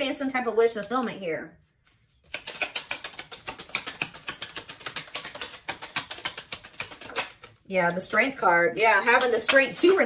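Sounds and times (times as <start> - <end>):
cards being shuffled: 0.7 - 8.2, 8.8 - 10.0.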